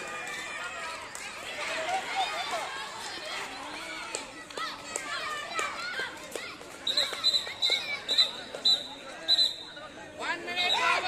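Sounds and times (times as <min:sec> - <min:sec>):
short high-pitched whistle toots: 0:06.9 - 0:09.8.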